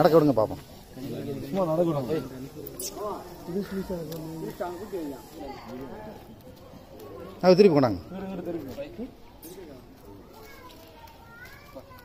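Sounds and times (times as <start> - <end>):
distant voices with children: 0.0 - 12.0.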